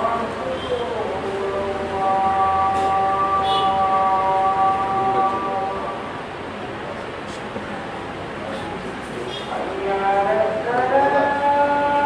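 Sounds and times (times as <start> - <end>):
person chanting: 0.0 - 6.2, 9.5 - 12.0.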